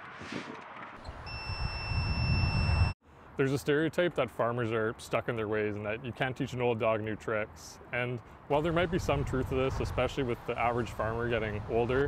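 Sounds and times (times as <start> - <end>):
wind rumble on microphone: 1.0 - 2.9
high-pitched electronic beep: 1.2 - 3.0.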